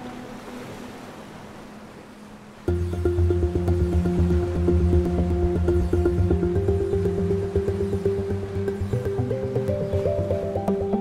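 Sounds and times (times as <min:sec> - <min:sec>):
waves breaking on beach: 0:00.0 - 0:02.7.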